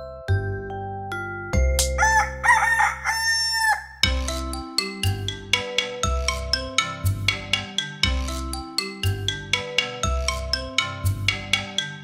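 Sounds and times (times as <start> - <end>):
soft mallet percussion music: 0.0 - 2.2, 4.0 - 12.0
rooster crowing: 2.0 - 4.1.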